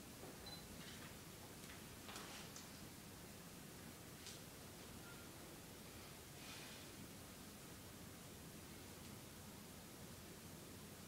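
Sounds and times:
soft rustles: 0.8s - 2.8s.

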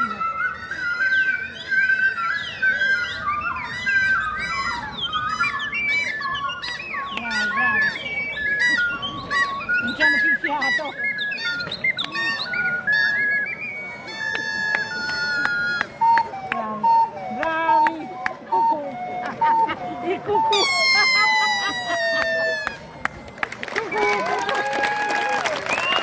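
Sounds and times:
ocarinas playing: 0.0s - 26.0s.

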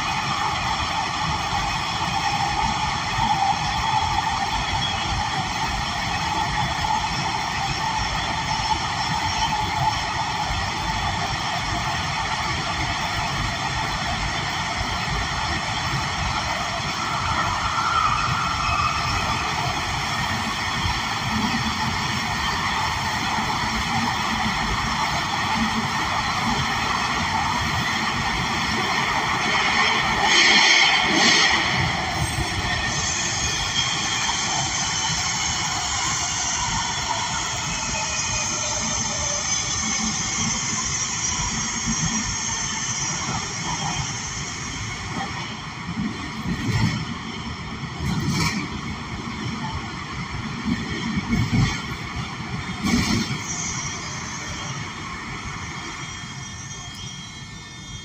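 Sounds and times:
wheels rolling on rail: 0.0s - 58.0s.

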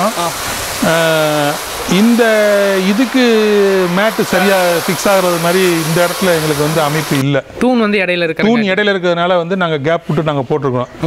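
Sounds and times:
steady hiss: 0.0s - 7.2s
man talking: 0.0s - 10.9s.

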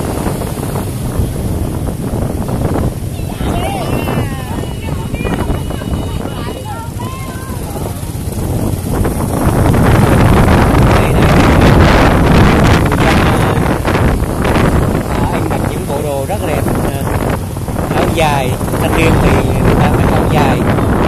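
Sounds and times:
motorbike traffic: 0.0s - 21.0s
wind rumble on microphone: 0.0s - 21.0s
people talking nearby: 2.9s - 9.3s, 10.3s - 21.0s.

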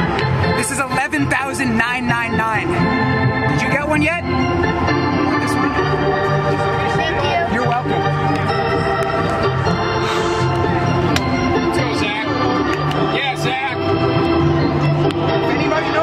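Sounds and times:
organ music: 0.0s - 16.0s.

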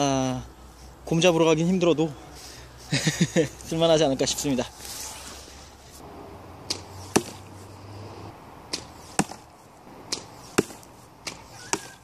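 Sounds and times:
arrow hitting foam target: 6.7s - 7.4s, 8.7s - 9.5s, 10.1s - 12.0s.

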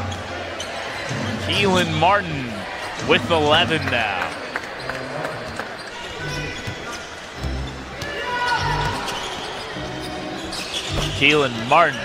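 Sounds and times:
arena crowd noise: 0.0s - 12.0s
basketball bouncing on hardwood: 10.8s - 11.3s.

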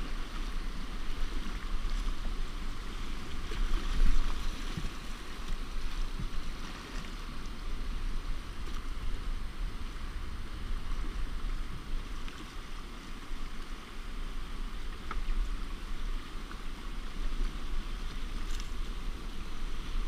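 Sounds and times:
river water splashing against hull: 0.0s - 20.0s
wind on microphone: 0.0s - 20.0s.

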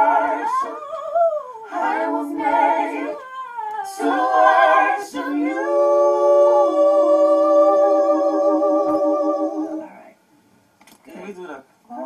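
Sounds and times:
voices singing a long note: 0.0s - 10.0s.

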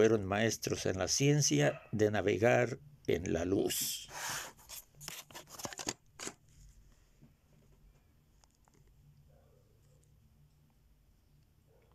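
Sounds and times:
faint room hum: 0.0s - 11.9s.

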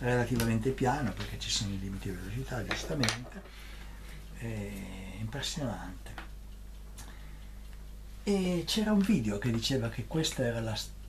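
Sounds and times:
low steady hum: 0.0s - 11.0s
faint ticks: 3.4s - 11.0s.

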